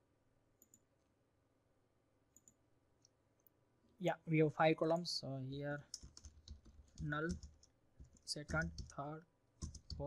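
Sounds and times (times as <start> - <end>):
computer mouse clicks: 0.6 - 0.9, 2.3 - 3.6, 5.9 - 9.0, 9.6 - 10.0.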